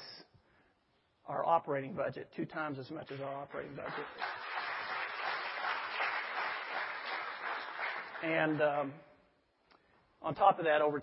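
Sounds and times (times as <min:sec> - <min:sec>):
congregation applauding: 0:03.6 - 0:08.6.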